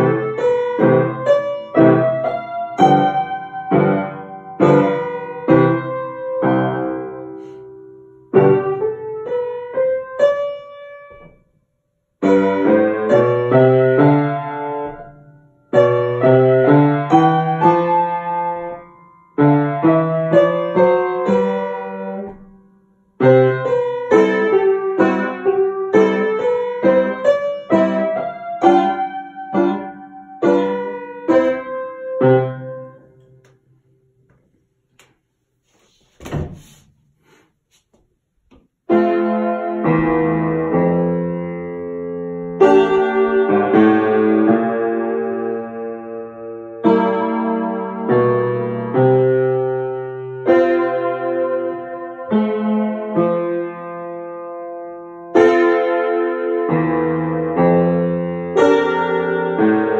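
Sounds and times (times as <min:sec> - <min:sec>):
solo piano piece: 0:00.0 - 0:34.3, 0:38.8 - 0:59.9.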